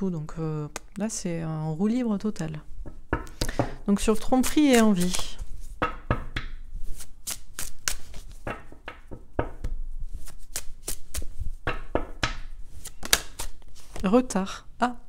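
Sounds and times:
cards being shuffled: 0:03.4 - 0:05.8, 0:06.8 - 0:08.5, 0:10.0 - 0:11.6, 0:12.7 - 0:14.2.

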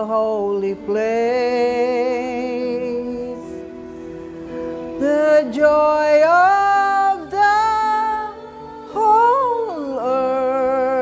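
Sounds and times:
musical accompaniment: 0:00.0 - 0:11.0
worship song singing: 0:00.0 - 0:11.0.

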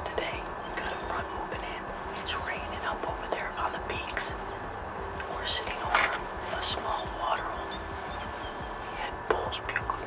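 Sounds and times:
person whispering: 0:00.0 - 0:04.3, 0:05.3 - 0:07.5, 0:08.8 - 0:10.0.

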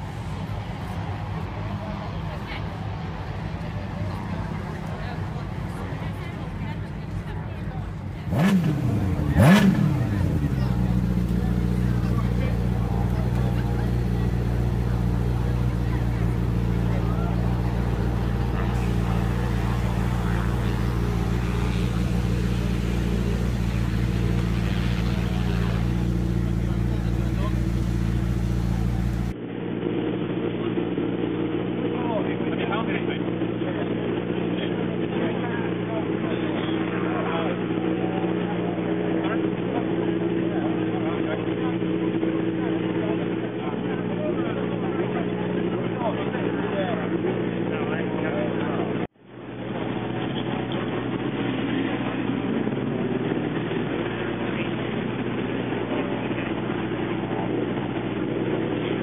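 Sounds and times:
racing engine revving and idling: 0:00.0 - 0:59.0.

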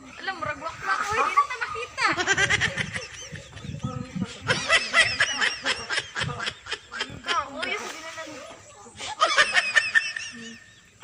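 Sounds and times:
women speaking: 0:00.0 - 0:04.2, 0:07.0 - 0:09.2
young women giggling and laughing: 0:00.7 - 0:11.0.

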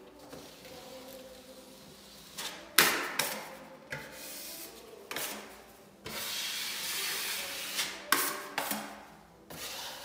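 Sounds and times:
drywall knife scraping compound: 0:02.3 - 0:10.0.

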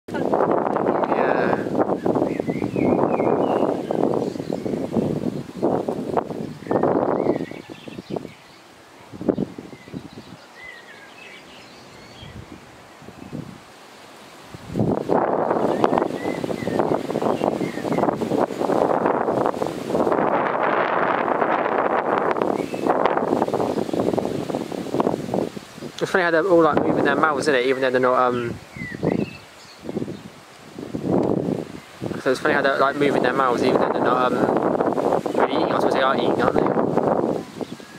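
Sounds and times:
wind rustling grass and foliage: 0:00.1 - 0:37.9
birds chirping faintly: 0:00.2 - 0:37.9.

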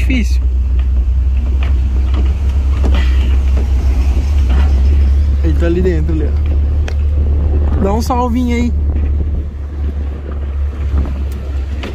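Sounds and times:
truck engine and road rumble: 0:00.0 - 0:11.9.

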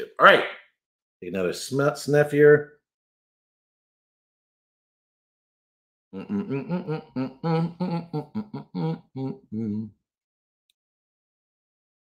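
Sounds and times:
man humming a tune: 0:06.2 - 0:10.0.

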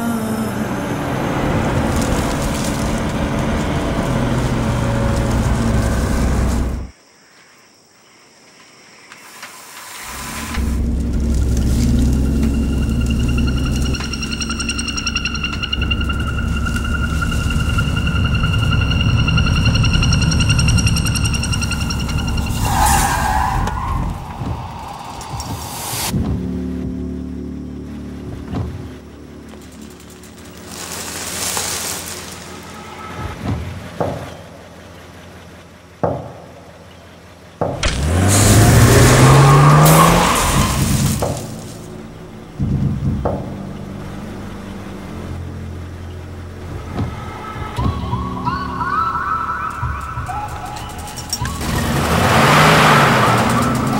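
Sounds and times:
car engine rumbling: 0:00.0 - 0:06.9, 0:09.8 - 0:53.9
engine revving: 0:00.0 - 0:06.9, 0:10.0 - 0:28.4, 0:37.8 - 0:48.0, 0:50.6 - 0:53.9
high music drone: 0:10.0 - 0:26.2, 0:41.6 - 0:53.9
sharp hits: 0:10.0 - 0:26.2.

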